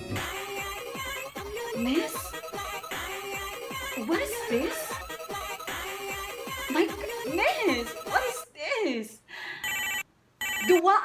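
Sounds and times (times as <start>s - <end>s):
electronic telephone ringtone: 9.6s - 10.8s.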